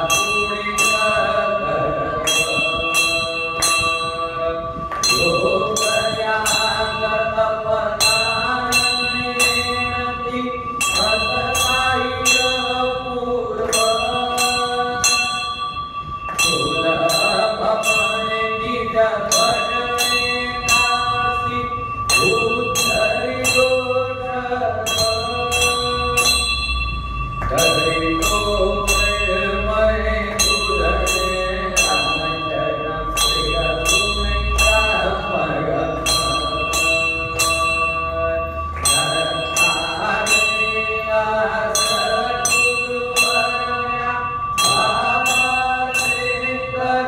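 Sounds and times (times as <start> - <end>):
temple bell ringing: 0.0 - 47.0.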